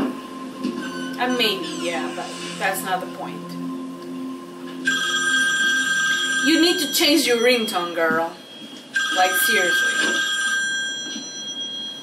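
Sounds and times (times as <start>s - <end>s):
phone ringtone trilling: 0.8s - 2.9s, 4.8s - 12.0s.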